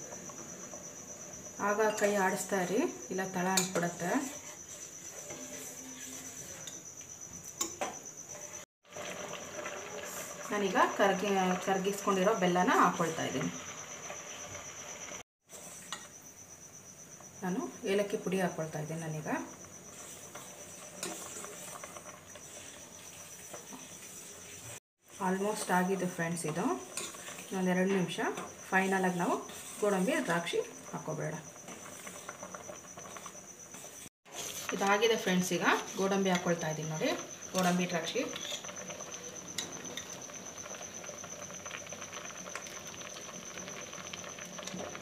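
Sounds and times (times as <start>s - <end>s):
pot bubbling on stove: 0.0s - 45.0s
ladle scraping pot: 19.9s - 24.6s, 26.4s - 27.6s.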